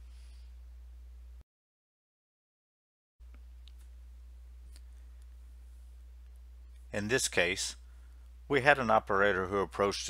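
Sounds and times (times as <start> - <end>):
low electrical hum: 0.0 - 1.4, 3.2 - 10.0.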